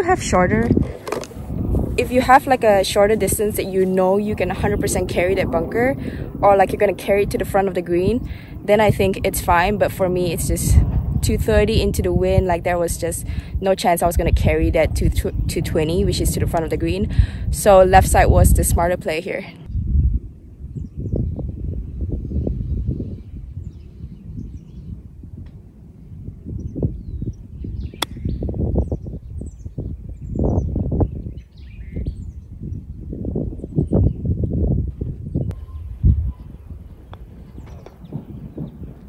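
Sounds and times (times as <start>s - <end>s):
wind gusting on microphone: 0.0s - 39.0s
faint birdsong chirping: 19.1s - 25.4s, 26.1s - 39.0s
golf club striking ball: 28.0s - 28.2s.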